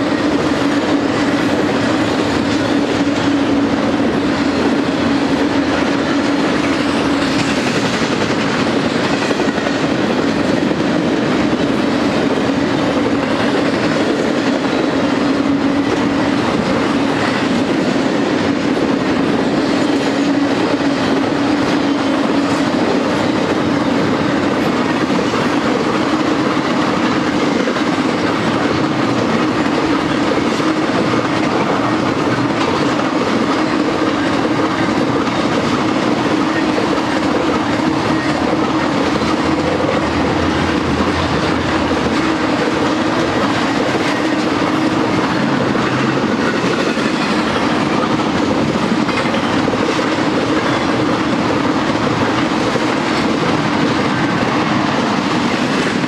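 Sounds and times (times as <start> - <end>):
freight train rolling past: 0.0 - 56.0
steel wheels on rail: 0.0 - 56.0.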